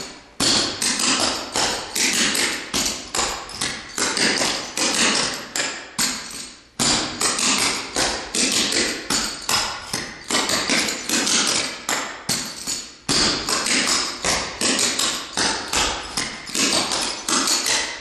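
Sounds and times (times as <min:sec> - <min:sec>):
clogging shoes tapping floor: 0:00.0 - 0:18.0.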